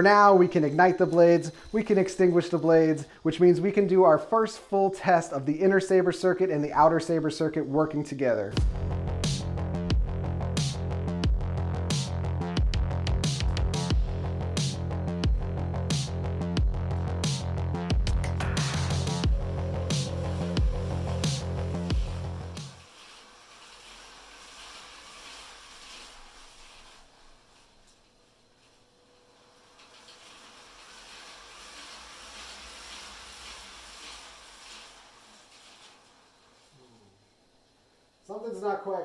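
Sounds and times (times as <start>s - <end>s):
electronic music with heavy beat: 8.6s - 22.8s.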